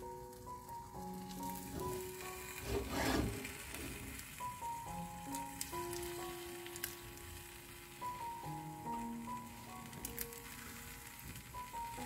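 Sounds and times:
background music with held notes: 0:00.0 - 0:12.0
flatbread crackling in a frying pan: 0:00.0 - 0:12.0.

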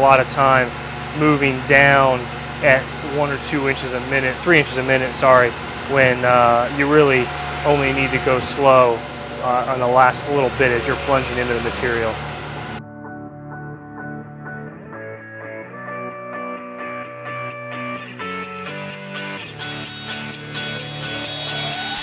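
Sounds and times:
voice: 0:00.0 - 0:12.2.

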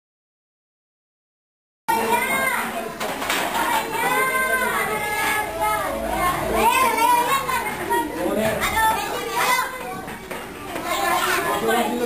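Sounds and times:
children talking and calling out: 0:01.9 - 0:12.0.

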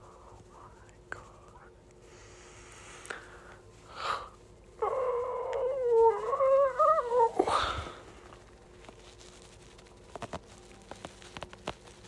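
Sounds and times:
wavering howl: 0:04.7 - 0:08.3.

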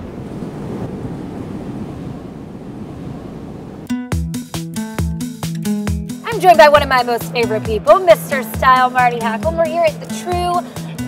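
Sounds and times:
background music with steady beat: 0:03.9 - 0:11.0.

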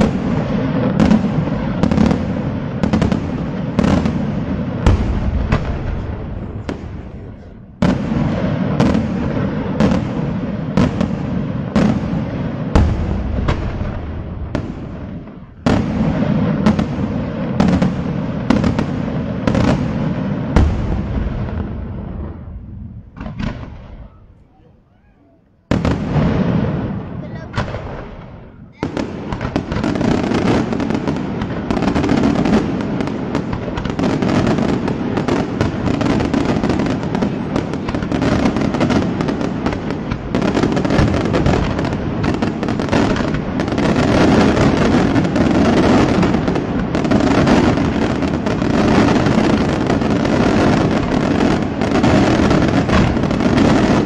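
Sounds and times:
fireworks bangs and crackling: 0:00.0 - 0:54.0.

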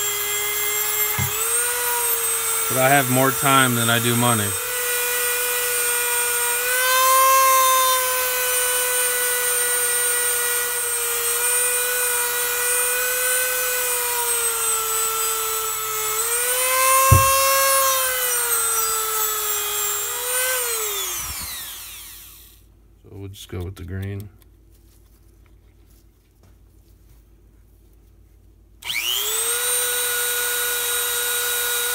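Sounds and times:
rotary tool whining: 0:00.0 - 0:09.2, 0:11.5 - 0:22.6.

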